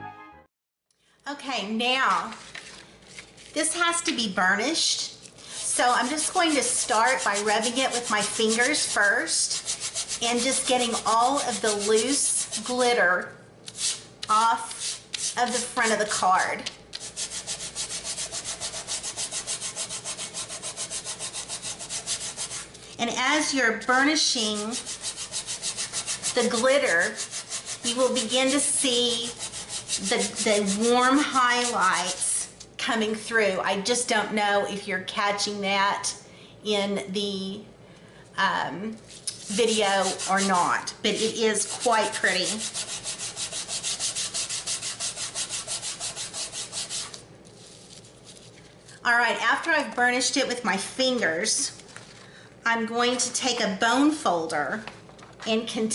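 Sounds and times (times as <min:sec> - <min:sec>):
fingertips scrubbing glitter: 0:05.5 - 0:12.8, 0:17.0 - 0:22.8, 0:23.9 - 0:32.3, 0:39.2 - 0:48.5.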